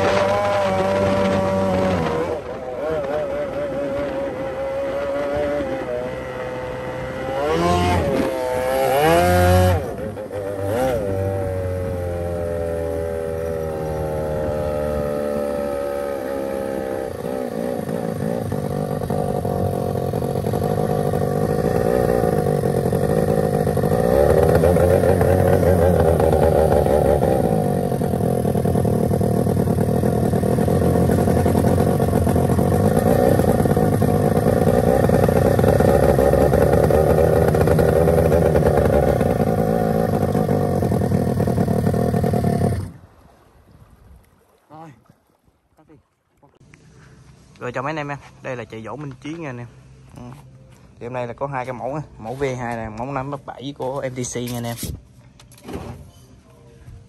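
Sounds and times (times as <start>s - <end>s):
boat engine running at speed: 0.0s - 44.6s.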